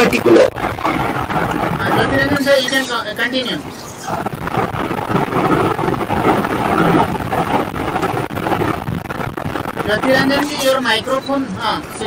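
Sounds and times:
rushing open microphone noise: 0:00.0 - 0:12.0.

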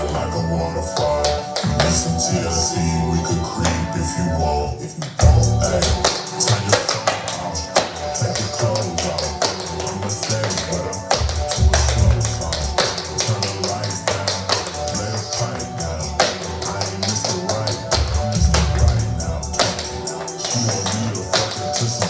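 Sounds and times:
slowed hip-hop track with heavy bass: 0:00.0 - 0:22.0.

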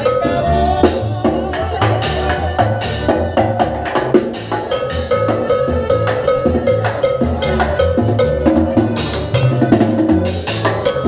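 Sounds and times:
low bass line: 0:00.0 - 0:11.0.

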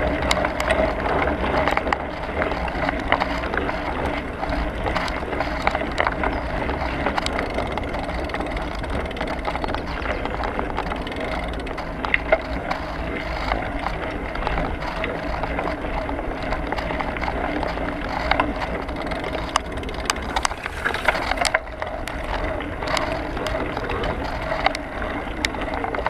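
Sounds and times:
bicycle tyre rumble on tarmac: 0:00.0 - 0:26.0
bike clicks and rattles: 0:00.0 - 0:26.0.

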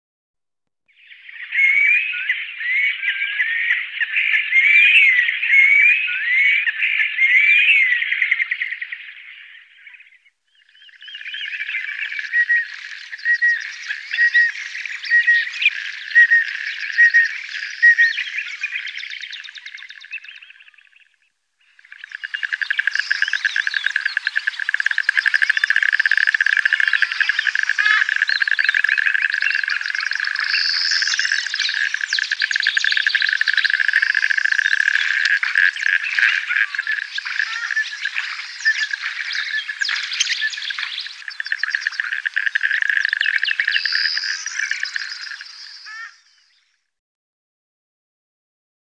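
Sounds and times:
duck calls: 0:22.2 - 0:46.2.

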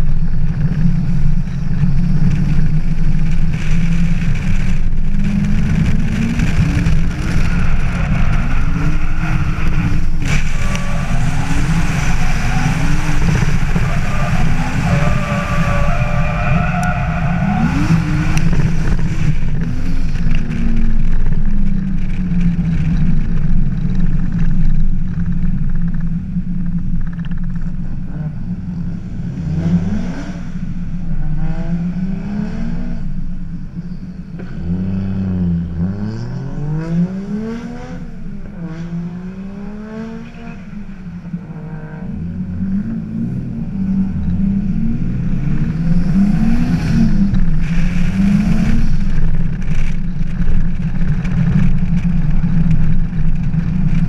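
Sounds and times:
tyre squeal: 0:07.2 - 0:18.8.

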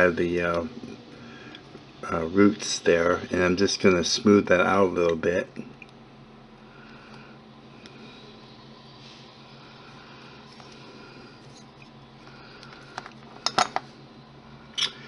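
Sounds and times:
room hum: 0:00.0 - 0:15.0.

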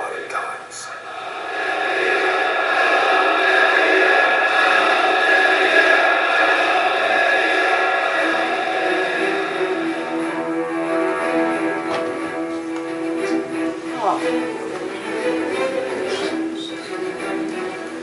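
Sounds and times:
dense wash of television sound: 0:00.0 - 0:18.0
music notes: 0:02.0 - 0:18.0.

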